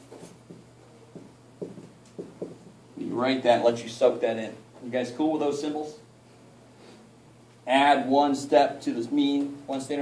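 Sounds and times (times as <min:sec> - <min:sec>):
marker writing on whiteboard: 0:00.0 - 0:02.8.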